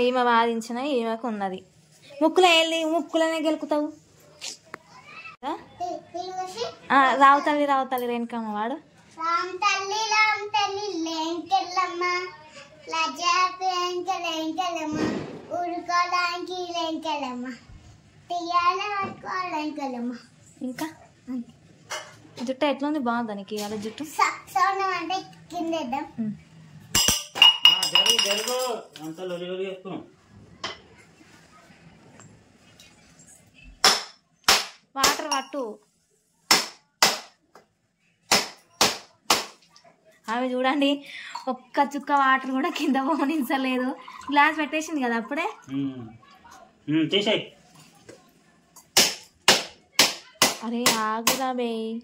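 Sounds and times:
loud sharp cracks: 33.8s - 35.2s, 36.5s - 37.4s, 38.3s - 39.6s, 49.0s - 50.6s.

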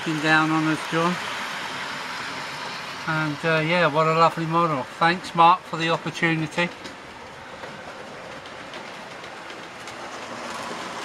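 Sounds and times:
model trains whirring on track: 0.0s - 11.0s.

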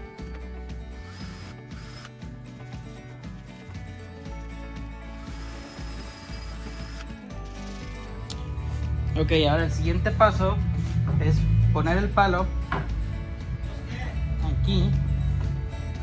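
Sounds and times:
background music: 0.0s - 16.0s
power drill bursts: 1.0s - 2.1s, 5.2s - 7.9s.

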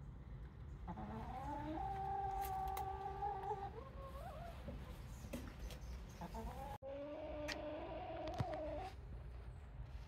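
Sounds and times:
chicken calling: 0.8s - 5.3s, 6.1s - 9.0s.

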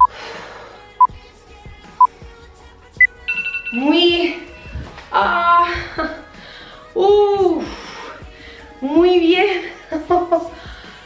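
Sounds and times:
countdown timer beeping: 3.0s - 4.8s.

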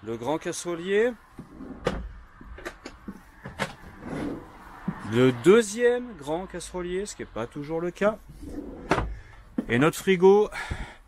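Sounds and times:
drawer sliding on runners: 1.4s - 2.0s, 3.5s - 4.5s, 8.3s - 9.2s
wooden drawers clicking and knocking: 8.4s - 9.8s.

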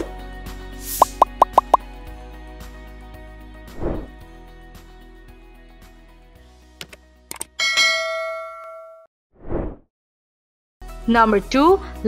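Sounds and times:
background music: 0.0s - 8.0s, 10.8s - 12.0s.

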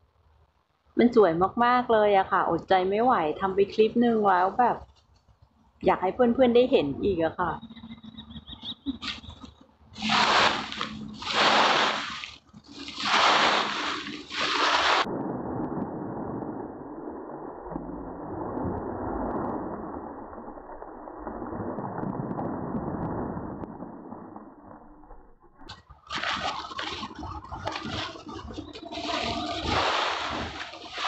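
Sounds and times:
dry leaves rustling: 10.0s - 15.0s, 26.0s - 31.0s.

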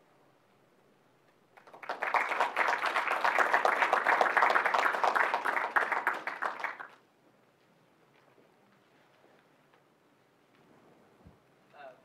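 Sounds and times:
audience applauding: 1.6s - 7.0s.

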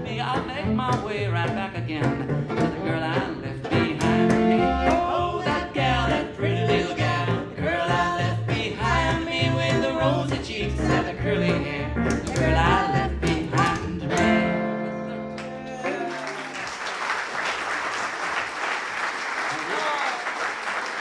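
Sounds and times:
western swing band with singing: 0.0s - 16.1s
audience applause: 15.4s - 21.0s.

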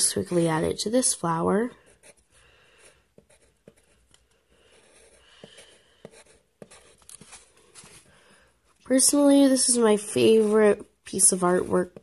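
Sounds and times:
pencil scratching on paper: 0.0s - 8.1s, 9.2s - 12.0s
pencil lead tapping: 3.2s - 7.2s.

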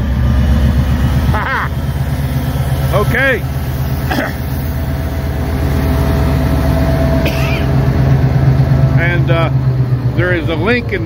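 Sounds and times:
diesel locomotive engine idling: 0.0s - 11.0s.

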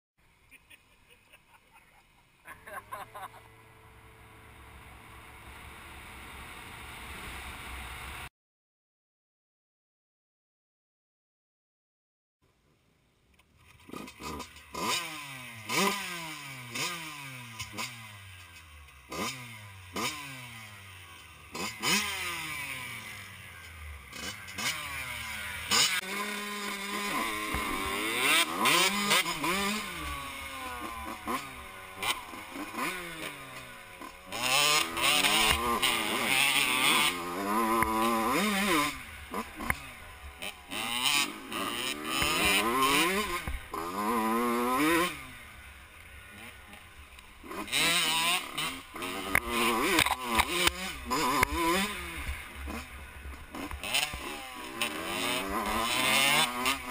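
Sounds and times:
dirt bike engine revving: 13.8s - 56.9s.

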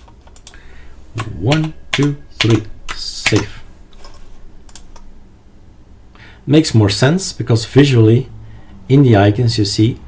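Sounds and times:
keyboard typing: 1.2s - 5.0s.

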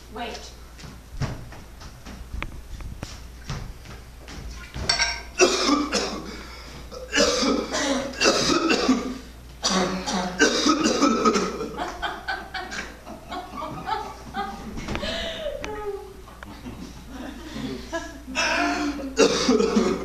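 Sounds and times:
man coughing hard: 5.4s - 11.8s, 18.4s - 20.0s.

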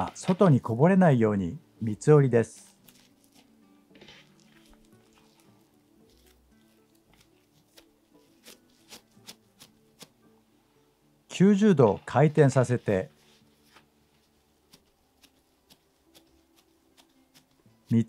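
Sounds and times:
faint background music: 0.0s - 18.0s
hands patting dough: 2.9s - 10.2s, 14.5s - 18.0s.

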